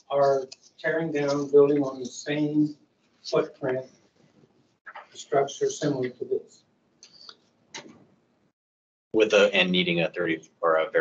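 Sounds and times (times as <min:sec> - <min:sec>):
faint voice: 0:00.1 - 0:02.7, 0:09.2 - 0:11.0.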